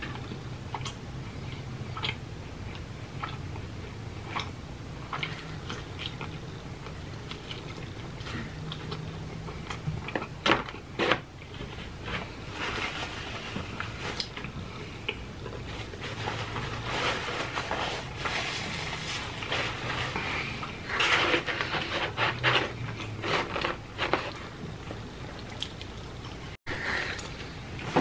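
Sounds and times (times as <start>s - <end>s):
person chewing: 0.0s - 12.4s, 20.1s - 27.5s.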